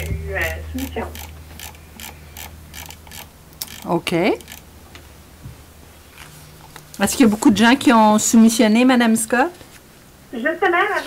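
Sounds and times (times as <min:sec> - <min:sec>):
steady low hum: 0:00.0 - 0:10.7.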